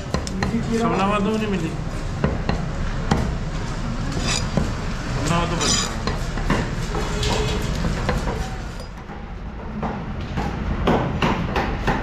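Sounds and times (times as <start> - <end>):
low market din: 0.0 - 10.8.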